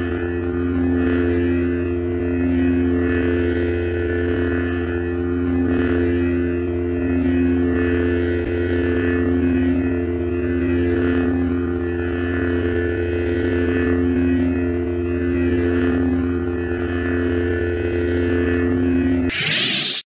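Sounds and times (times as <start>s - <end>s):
lightsaber electric hum: 0.0s - 20.0s.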